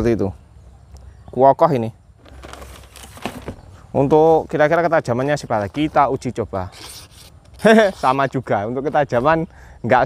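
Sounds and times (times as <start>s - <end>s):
faint rustling: 2.2s - 6.2s.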